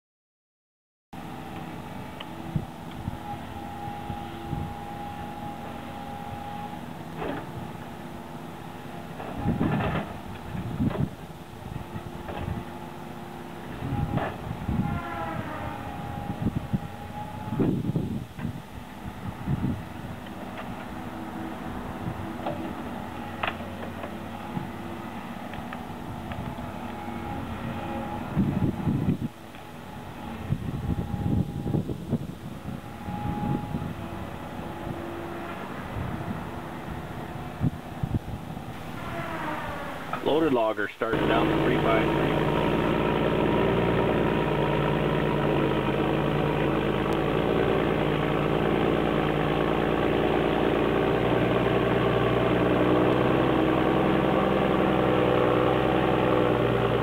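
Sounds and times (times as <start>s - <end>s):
diesel engine and hydraulics whine: 1.2s - 57.0s.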